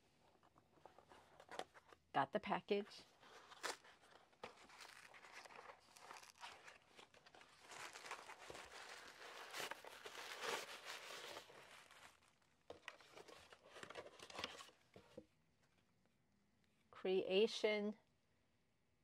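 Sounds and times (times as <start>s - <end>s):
paper rustling and crinkling: 3.1s - 15.2s.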